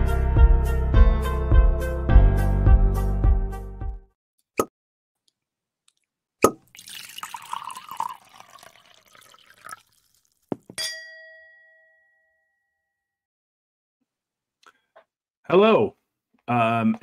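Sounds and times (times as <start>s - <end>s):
liquid poured into a glass: 6.6s - 10.6s
glass struck ringing ding: 10.8s - 12.7s.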